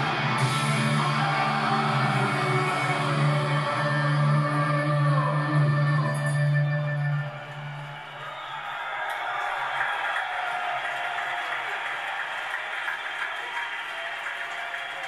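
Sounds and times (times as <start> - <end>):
rock band final chord: 0.0 - 4.4
crowd cheering and applauding: 0.0 - 5.2, 6.8 - 15.0.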